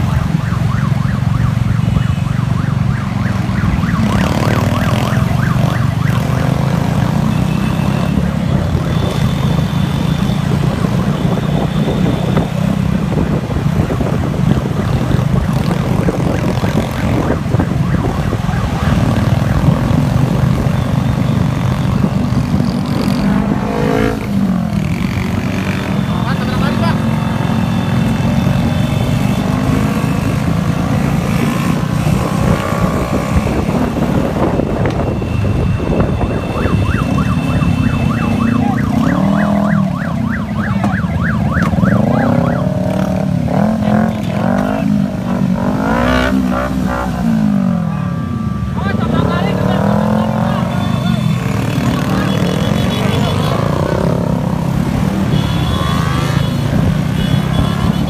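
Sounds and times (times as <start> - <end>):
motorcycle engine and road rumble: 0.0 - 58.0.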